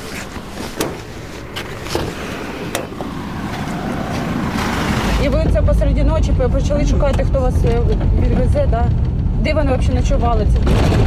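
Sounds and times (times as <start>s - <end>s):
vehicle rumble: 0.0s - 11.0s
sliding door rushing open: 0.5s - 5.3s.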